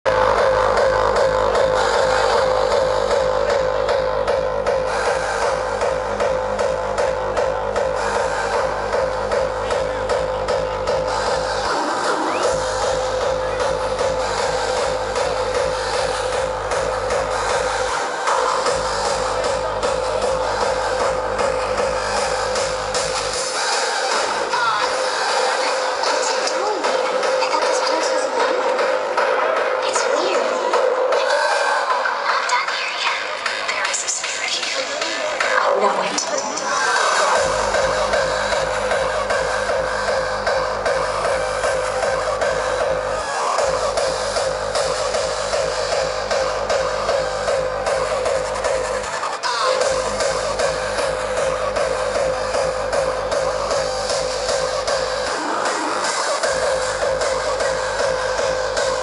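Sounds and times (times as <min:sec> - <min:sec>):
rhythmic kick drum: 0:00.0 - 0:32.2, 0:33.2 - 0:59.0.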